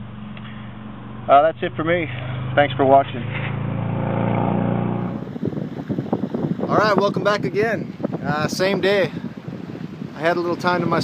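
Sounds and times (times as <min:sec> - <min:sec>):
car engine running: 0:00.0 - 0:06.6
wind buffeting microphone: 0:03.6 - 0:11.0.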